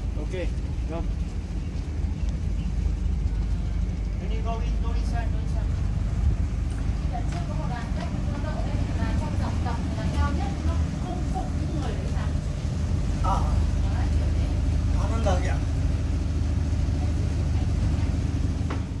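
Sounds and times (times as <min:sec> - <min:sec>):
boat engine droning: 0:00.0 - 0:19.0
voices: 0:00.0 - 0:19.0.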